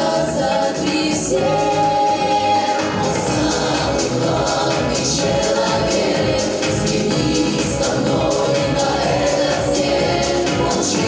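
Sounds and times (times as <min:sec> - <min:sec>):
mixed choir singing over speaker: 0:00.0 - 0:11.0.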